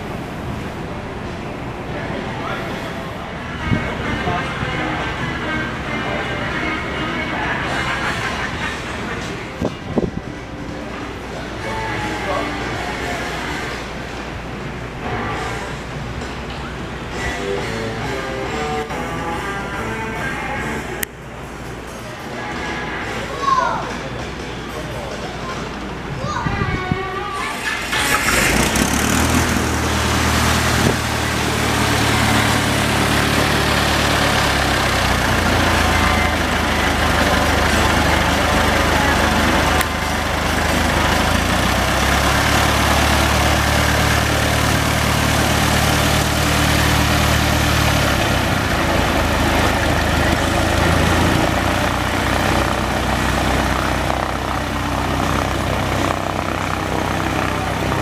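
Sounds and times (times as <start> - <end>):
propeller plane engine running: 27.6 - 58.0.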